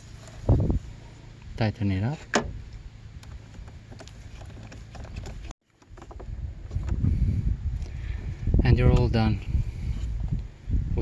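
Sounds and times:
low microphone rumble: 0.0s - 1.5s, 6.2s - 11.0s.

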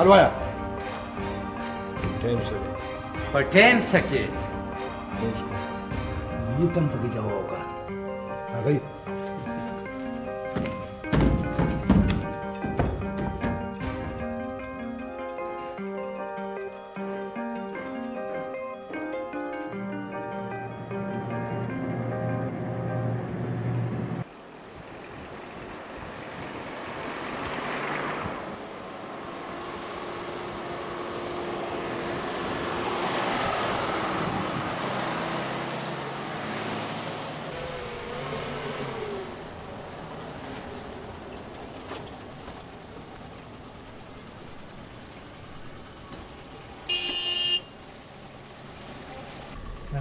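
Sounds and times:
vehicles passing: 0.0s - 15.8s, 25.2s - 46.9s.

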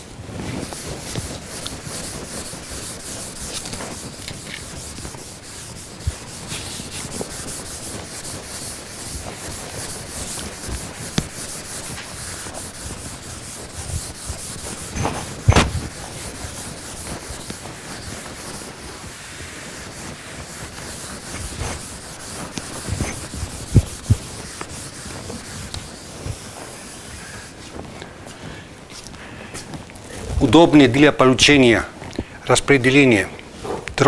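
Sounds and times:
eraser rubbing on chalkboard: 0.4s - 27.8s.

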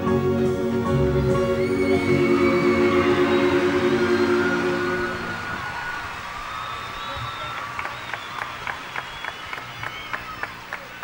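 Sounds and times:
live band final chord: 0.0s - 6.2s
audience applause and cheering: 1.3s - 11.0s
whistling: 1.4s - 10.9s.

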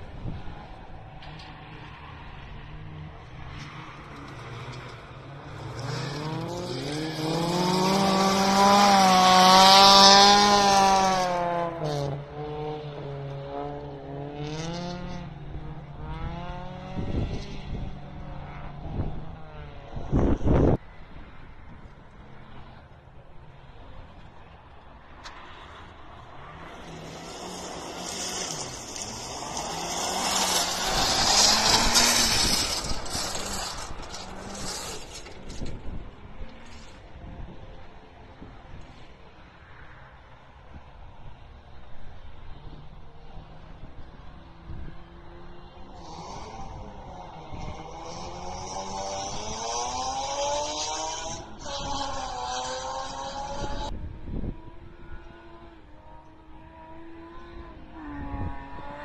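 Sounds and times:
rally car engine revving past: 0.0s - 20.8s, 25.2s - 37.0s, 44.0s - 59.0s.

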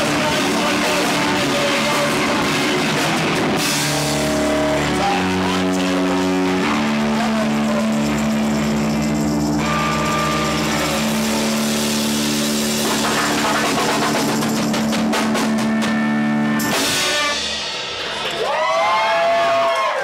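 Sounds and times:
keyboard held notes: 0.0s - 18.0s
rock band droning held notes: 0.0s - 19.0s.

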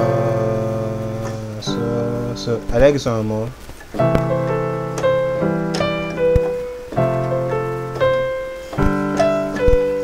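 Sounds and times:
slow piano chords: 0.0s - 10.0s.

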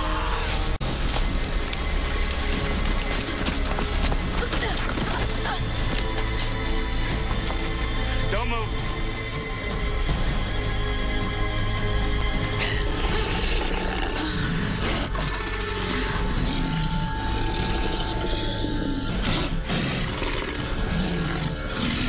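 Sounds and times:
tense background music: 0.0s - 22.0s
beast growling: 12.6s - 22.0s.

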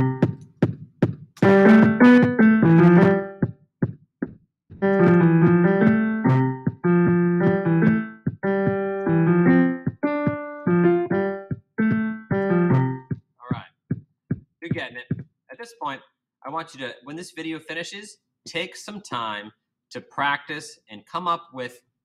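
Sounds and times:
drum machine beat: 0.0s - 15.3s
piano playing quick runs: 1.4s - 3.5s, 4.8s - 13.2s.

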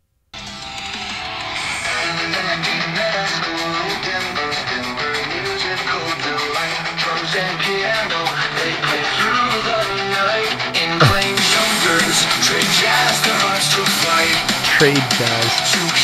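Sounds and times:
steady drumbeat: 11.0s - 11.3s.

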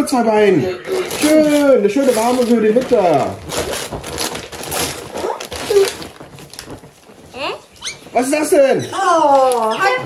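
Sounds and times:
tissue paper rustling: 0.9s - 10.0s.

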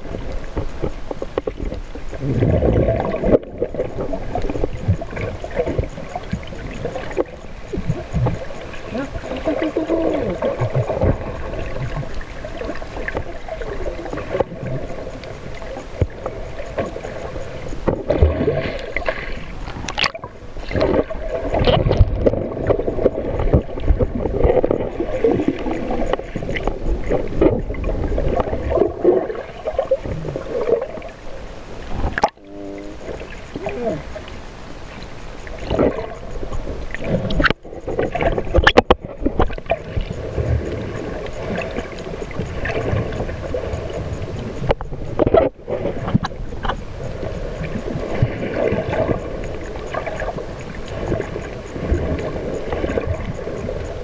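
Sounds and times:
water sloshing and gurgling: 0.0s - 54.0s.

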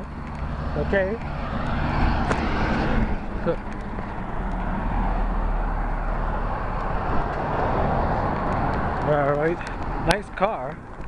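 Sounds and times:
car passing by: 0.4s - 10.2s.

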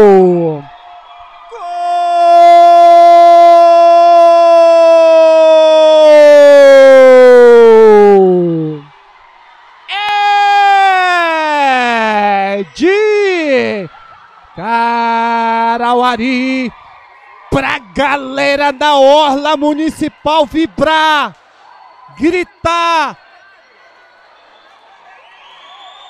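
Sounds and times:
man shouting goal: 0.0s - 0.7s, 1.6s - 8.8s, 9.9s - 13.9s.

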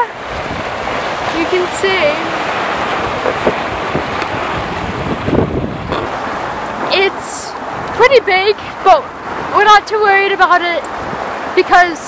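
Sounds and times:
sea rushing: 0.0s - 12.0s
wind buffeting microphone: 0.0s - 12.0s.

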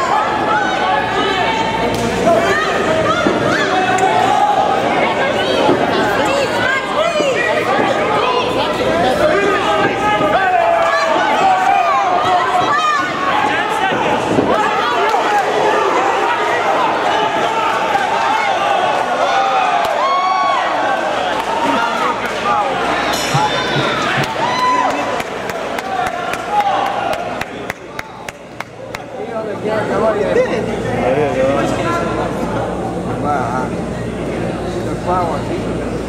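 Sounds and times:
crowd shouting and cheering: 0.0s - 36.0s.

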